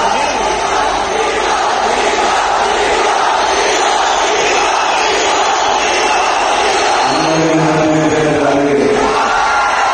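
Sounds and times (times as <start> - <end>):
large crowd noise: 0.0 - 9.9.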